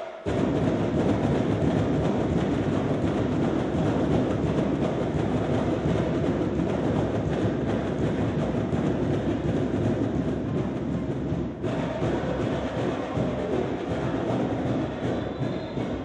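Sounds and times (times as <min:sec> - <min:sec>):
drumline drumming: 0:00.0 - 0:16.0.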